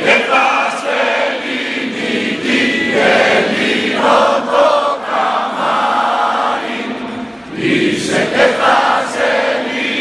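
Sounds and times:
crowd singing in unison: 0.0 - 10.0.

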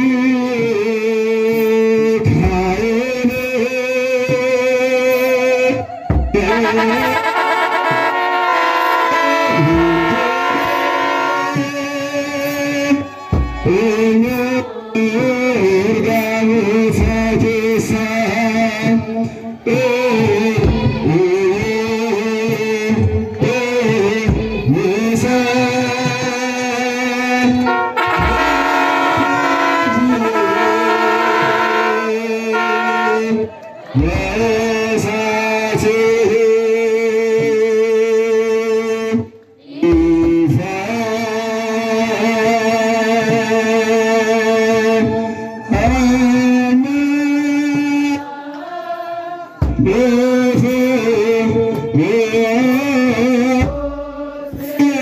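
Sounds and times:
group singing a hymn: 5.1 - 55.0.

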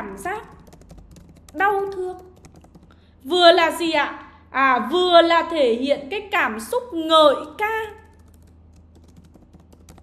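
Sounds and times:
fast typing on keyboard: 0.0 - 3.0, 7.6 - 10.0.

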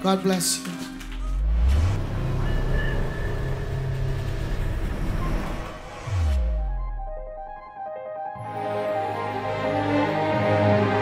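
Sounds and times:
deep rumbling drone: 1.2 - 7.6.

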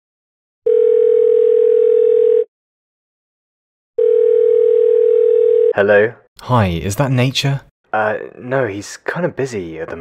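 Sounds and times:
telephone ringback tone: 0.7 - 2.5, 4.0 - 5.7.

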